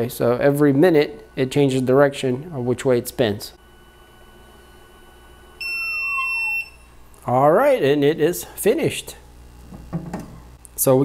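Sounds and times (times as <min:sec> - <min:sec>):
faint whine sliding down: 0:04.1 - 0:07.0
steady high beep: 0:05.6 - 0:06.9.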